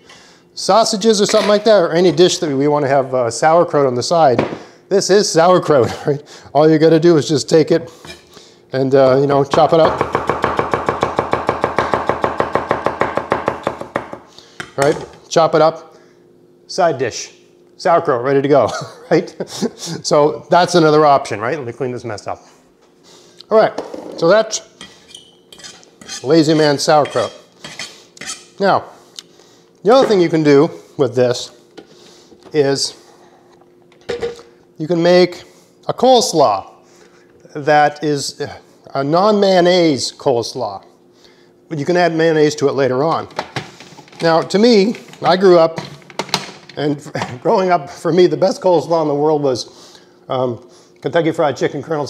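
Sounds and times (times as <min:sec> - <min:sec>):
faint steady hum: 0:00.0 - 0:52.0
knife chopping on wooden board: 0:09.8 - 0:14.2.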